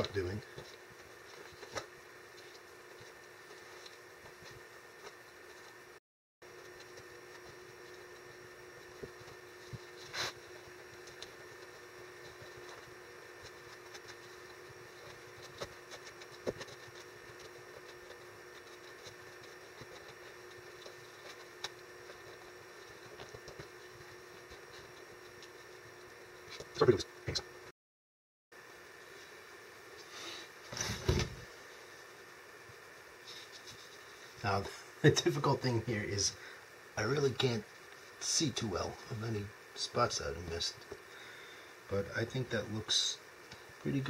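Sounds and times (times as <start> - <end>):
faint room hum: 0.0 - 27.7, 28.6 - 44.0
stir stick tapping and scraping: 6.5 - 26.8.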